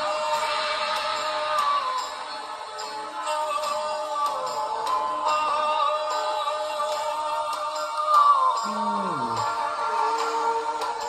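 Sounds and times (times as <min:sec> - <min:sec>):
man singing long notes: 0:08.5 - 0:09.6.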